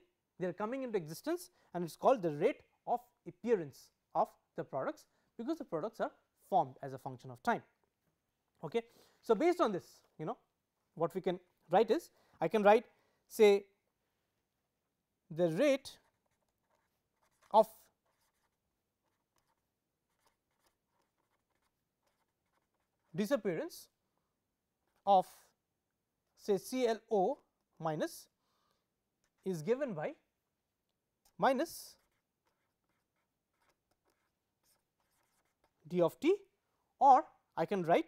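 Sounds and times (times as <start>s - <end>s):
marker scratching on paper: 15.4s - 24.0s, 24.8s - 25.6s, 29.2s - 30.0s, 31.3s - 36.0s.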